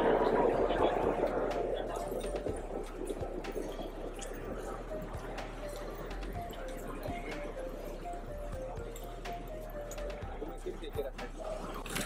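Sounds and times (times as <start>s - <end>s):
background music melody: 0.0s - 12.0s.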